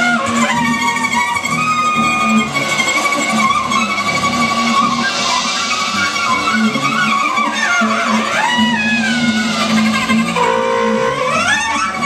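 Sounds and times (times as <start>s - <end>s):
cello: 0.0s - 12.0s
clarinet: 0.0s - 12.0s
drums: 0.0s - 12.0s.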